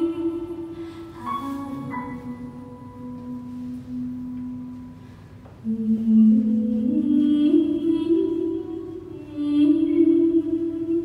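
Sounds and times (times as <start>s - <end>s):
piano accompaniment: 0.0s - 5.2s.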